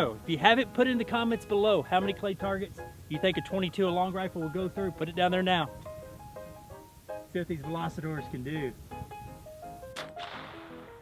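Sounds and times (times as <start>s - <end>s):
rifle shot crack: 10.0s - 11.0s.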